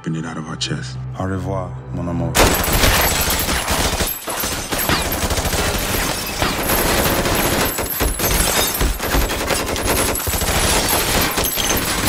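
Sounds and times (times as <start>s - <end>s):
rapid gunfire bursts: 2.4s - 12.0s.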